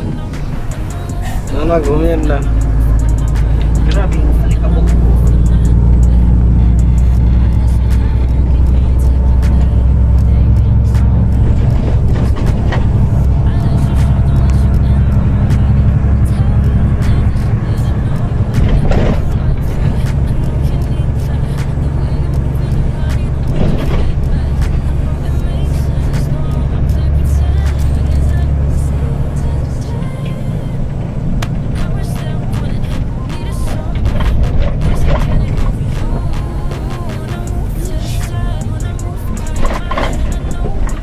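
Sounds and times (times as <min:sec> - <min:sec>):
music playing: 0:00.0 - 0:41.0
truck engine running: 0:00.0 - 0:41.0.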